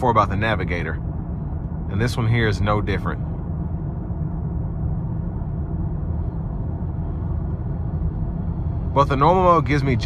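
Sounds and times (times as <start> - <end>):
car cabin road and engine drone: 0.0 - 10.0.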